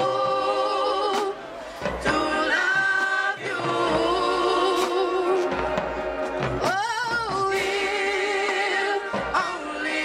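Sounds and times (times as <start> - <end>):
marching band holding chords: 0.0 - 10.0.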